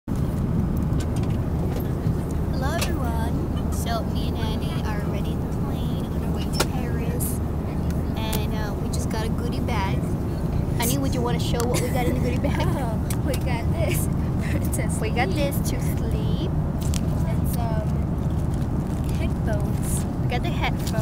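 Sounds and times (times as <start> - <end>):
aircraft cabin drone: 0.1 - 21.0
voices talking: 1.4 - 18.2, 19.0 - 21.0.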